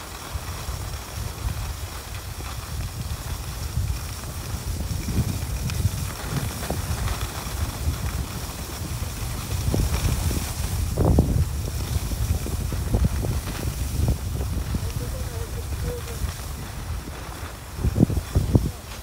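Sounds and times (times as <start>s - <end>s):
skis scraping on snow: 0.0s - 19.0s
wind rumbling on microphone: 0.0s - 19.0s.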